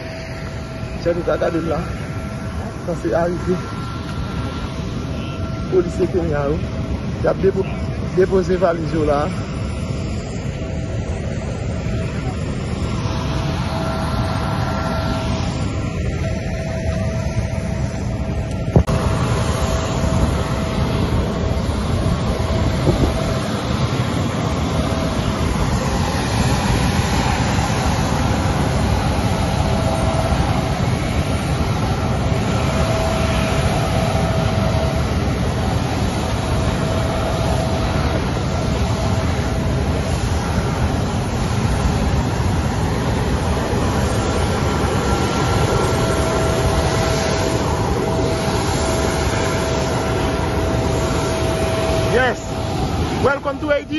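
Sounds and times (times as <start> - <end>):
faint steady whine: 0.0 - 53.9
jet airliner engine roar: 0.0 - 53.9.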